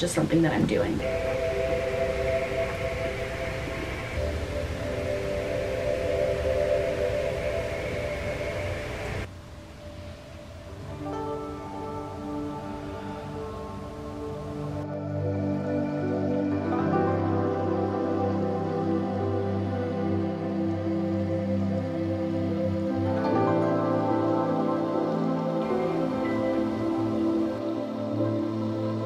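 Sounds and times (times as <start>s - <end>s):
ambient meditation music: 1.0s - 29.0s.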